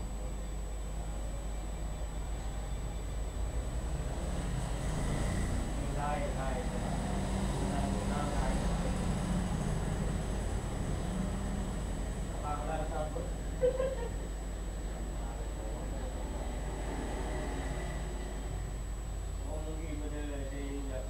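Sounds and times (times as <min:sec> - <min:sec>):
steady low hum: 0:00.0 - 0:21.0
vehicle passing: 0:03.8 - 0:12.1, 0:16.1 - 0:18.8.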